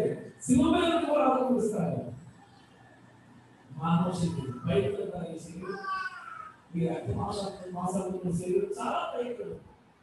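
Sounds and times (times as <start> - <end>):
man preaching into a microphone: 0.0 - 2.2, 3.7 - 9.6.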